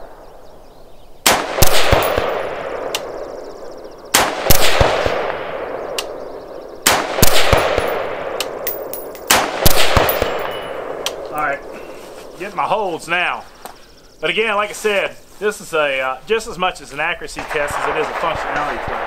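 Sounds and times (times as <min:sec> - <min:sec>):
rifle shots: 0:01.2 - 0:03.4, 0:04.1 - 0:06.2, 0:06.8 - 0:11.3, 0:17.4 - 0:19.0
rolling echo of gunshots: 0:01.2 - 0:03.4, 0:04.1 - 0:06.2, 0:06.8 - 0:11.7, 0:17.3 - 0:19.0.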